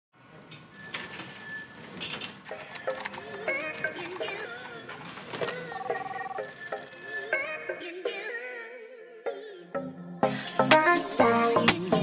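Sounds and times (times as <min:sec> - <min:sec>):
scattered clicks and clatter: 0:02.0 - 0:06.1.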